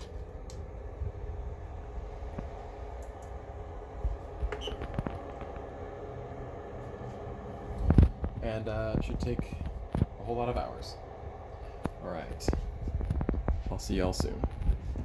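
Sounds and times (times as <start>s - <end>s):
light clicks of controls: 0.0s - 0.7s, 2.3s - 3.4s
cooling fans humming: 0.0s - 15.0s.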